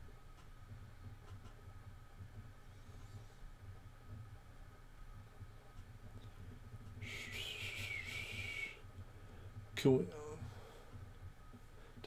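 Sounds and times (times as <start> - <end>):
soft breathy high whistle: 7.0 - 8.8.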